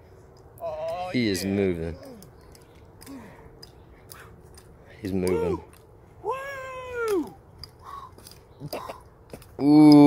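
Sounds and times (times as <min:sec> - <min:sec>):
man's drawn-out exclamation: 0:05.1 - 0:07.4.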